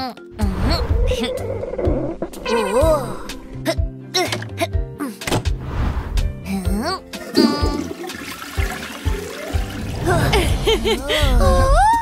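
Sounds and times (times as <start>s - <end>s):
light background music: 0.0s - 12.0s
cartoon toilet flushing: 7.2s - 10.4s.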